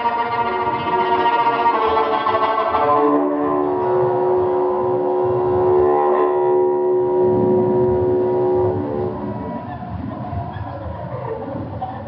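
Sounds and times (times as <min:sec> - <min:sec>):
bowed fiddle drone: 0:00.0 - 0:10.0
low uneven rumble: 0:03.7 - 0:12.0.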